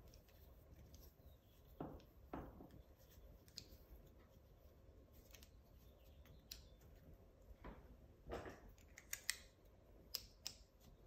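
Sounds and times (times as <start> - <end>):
carabiner clicks: 8.8 - 10.7.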